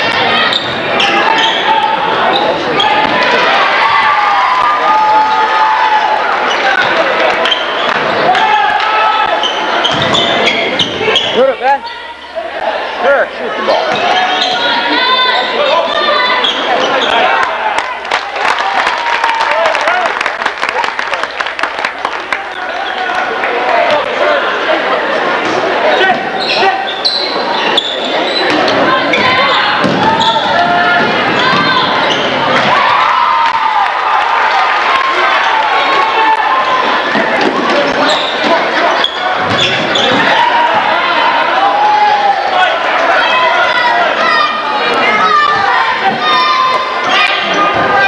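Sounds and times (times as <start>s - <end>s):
spectators talking and calling out: 0.0s - 48.0s.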